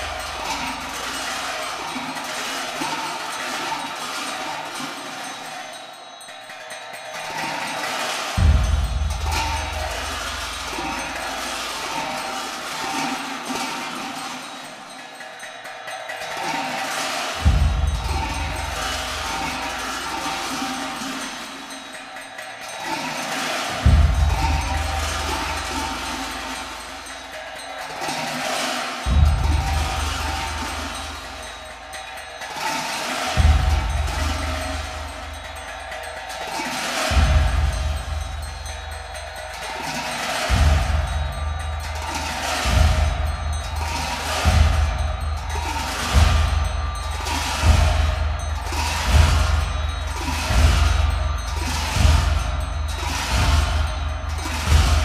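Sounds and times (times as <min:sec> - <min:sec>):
metallic percussion clashing: 0:00.0 - 0:55.0.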